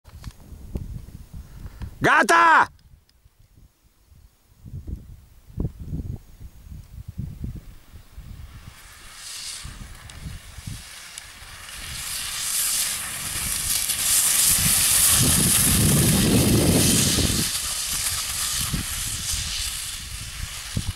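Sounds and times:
wind buffeting microphone: 0.2s - 2.0s, 2.9s - 20.9s
grass skis hissing over grass: 4.1s - 20.9s.

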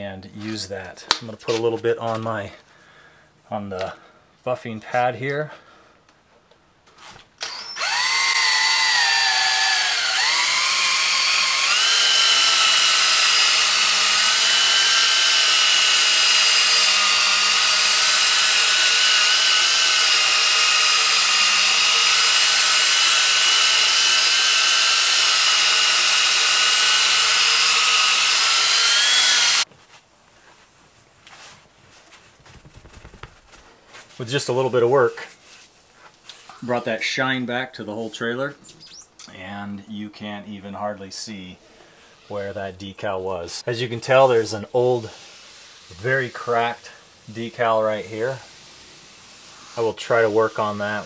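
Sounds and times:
drill motor whine: 7.4s - 29.6s.

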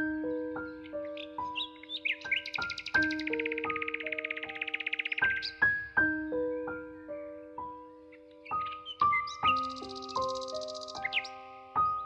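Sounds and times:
gentle solo piano notes: 0.0s - 12.0s
birdsong chirping: 0.2s - 6.6s, 7.9s - 12.0s
fast high bird trill: 1.1s - 5.6s.

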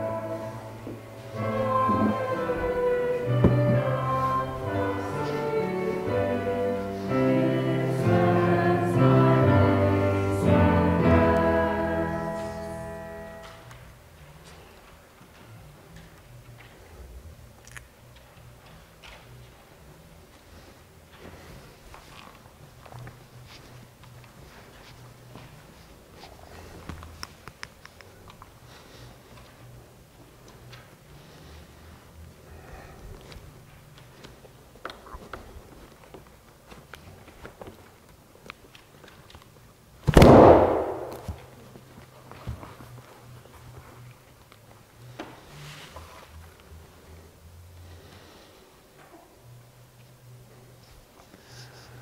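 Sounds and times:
loud slam with reverberation: 40.1s - 41.5s.

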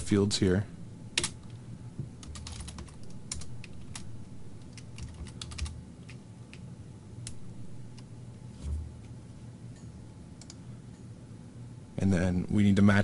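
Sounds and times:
computer keyboard typing: 1.2s - 1.6s, 2.2s - 6.6s.

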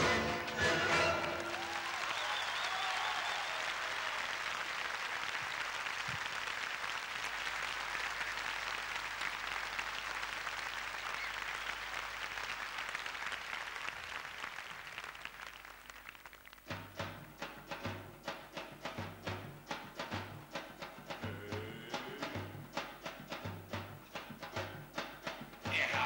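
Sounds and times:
audience applauding: 0.0s - 17.0s.

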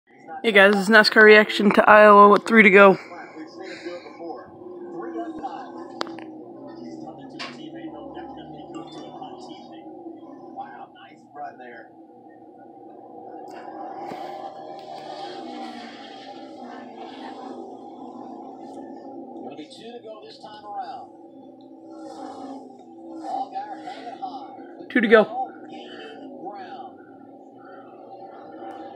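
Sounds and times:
race car engines droning: 0.1s - 28.9s
commentators talking: 0.4s - 28.9s.

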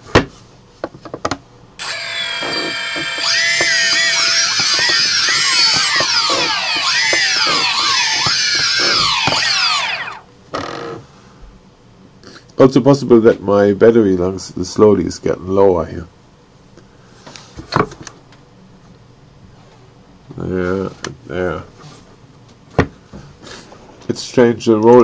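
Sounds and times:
gimbal motors whining: 1.8s - 10.2s.

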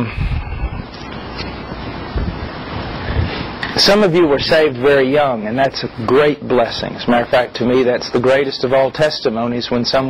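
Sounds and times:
background recording hiss: 0.0s - 10.0s.

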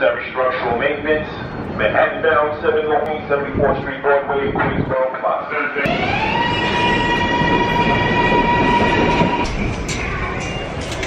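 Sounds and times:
train rumble: 0.0s - 11.0s
electric train motor whine: 5.9s - 9.7s.

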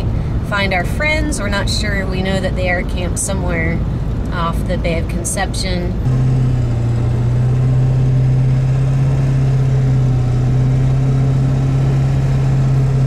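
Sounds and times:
road and wind noise: 0.0s - 13.0s
truck engine drone: 0.0s - 13.0s.

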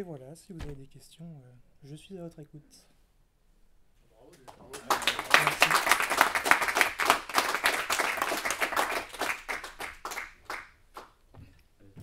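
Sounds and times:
audience applauding: 4.6s - 11.1s.

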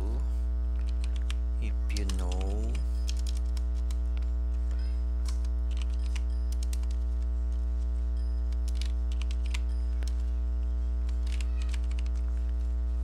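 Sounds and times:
loud low hum: 0.0s - 13.0s
computer keyboard typing: 0.7s - 10.3s, 11.0s - 12.6s.

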